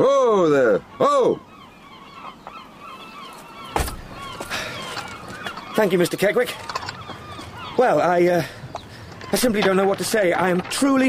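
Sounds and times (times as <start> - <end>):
marsh birds calling: 0.0 - 11.0
loud thump: 3.8 - 4.2.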